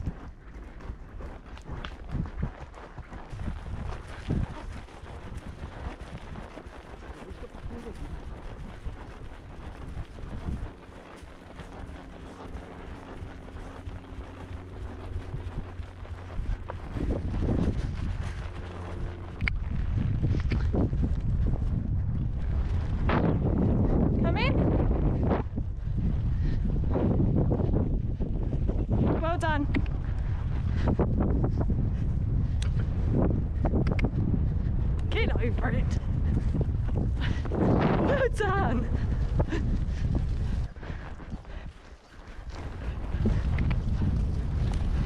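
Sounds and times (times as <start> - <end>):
horse hooves on grass: 0.0 - 45.0
wind buffeting microphone: 0.0 - 45.0.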